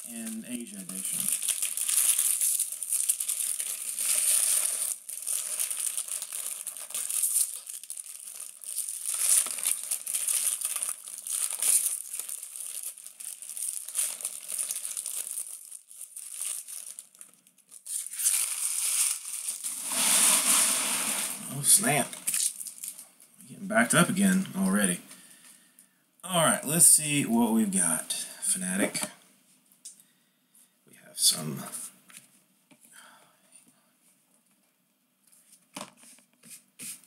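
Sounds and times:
foil wrappers crinkling and tearing: 0.1s - 23.0s.

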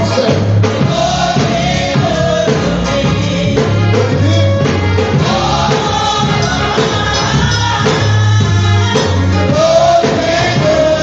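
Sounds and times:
gospel choir singing: 0.0s - 11.0s
held low bass notes: 0.0s - 11.0s
instrumental accompaniment: 0.0s - 11.0s.

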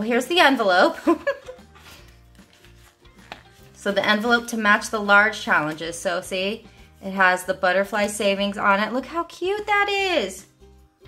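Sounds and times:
woman speaking: 0.0s - 1.1s, 3.8s - 10.5s
soft background music: 0.0s - 11.0s
handling paper cards and plastic: 1.8s - 4.4s.

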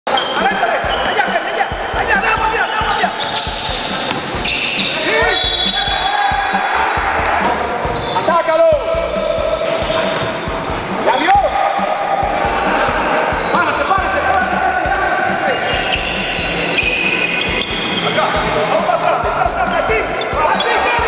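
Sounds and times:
sneakers squeaking on floor: 0.1s - 6.3s, 7.4s - 18.6s, 19.6s - 21.0s
voices echoing in hall: 0.1s - 21.0s
basketball bouncing: 3.2s - 4.6s.

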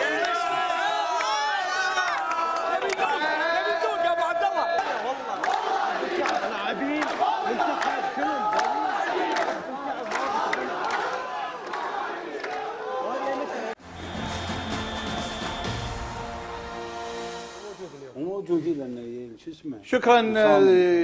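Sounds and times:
crowd shouting and chanting: 0.0s - 16.6s.

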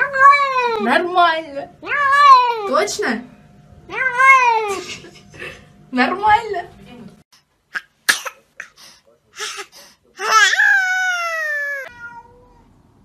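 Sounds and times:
cat meowing: 10.2s - 12.7s.

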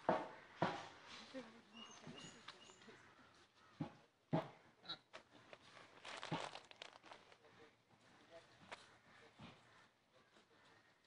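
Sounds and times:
footsteps on dry leaves: 5.5s - 7.4s.

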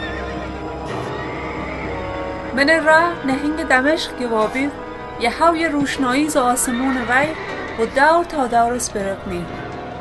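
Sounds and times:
horse neighing: 0.0s - 2.5s, 6.4s - 8.4s
film music: 0.0s - 10.0s.

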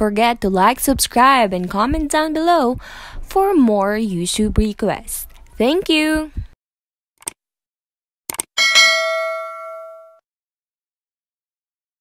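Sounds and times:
bell ding: 8.6s - 10.2s.

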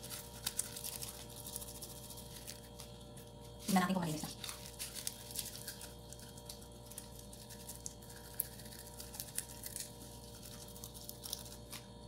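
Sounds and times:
leaves being chewed: 0.0s - 12.0s
low steady hum: 0.0s - 12.0s.

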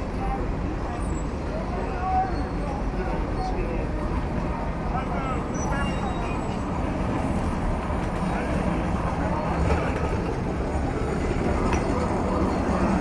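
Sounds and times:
people talking: 0.0s - 6.6s, 8.1s - 10.4s
road traffic: 0.0s - 13.0s.

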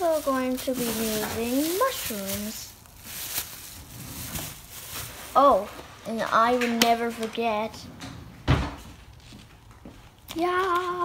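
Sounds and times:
plastic bag rustling: 0.0s - 6.6s.

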